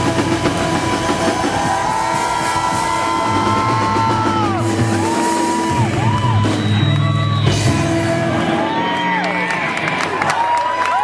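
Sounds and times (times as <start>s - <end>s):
long high notes sliding down: 0.0s - 9.6s
live rock band: 0.0s - 11.0s.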